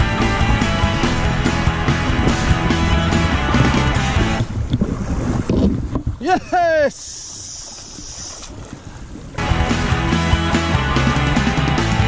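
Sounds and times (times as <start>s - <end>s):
rock music: 0.0s - 4.5s, 9.4s - 12.0s
river water: 0.0s - 12.0s
wind: 0.0s - 12.0s
person shouting excitedly: 6.2s - 6.9s.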